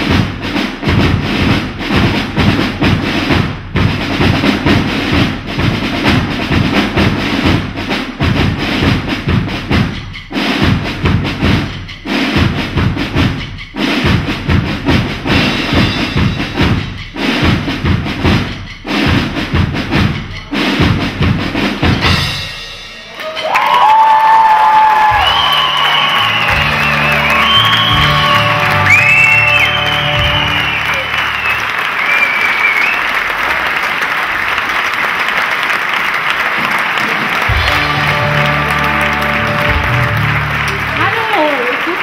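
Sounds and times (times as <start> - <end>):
drum piece: 0.0 - 42.0
audience applauding and cheering: 23.1 - 42.0
music with bass notes: 25.2 - 31.1, 37.5 - 41.3.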